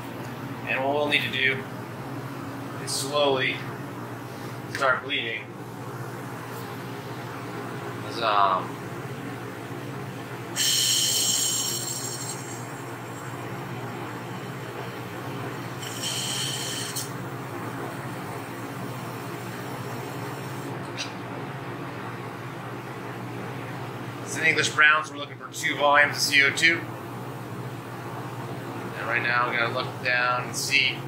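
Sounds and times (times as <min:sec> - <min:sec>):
refrigeration hum: 0:00.0 - 0:31.0
pressurised gas hissing from valve: 0:10.6 - 0:12.6, 0:15.8 - 0:17.1.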